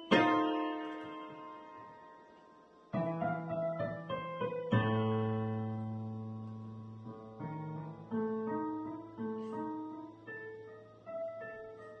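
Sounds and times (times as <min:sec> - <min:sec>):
digital piano solo: 0:00.0 - 0:12.0.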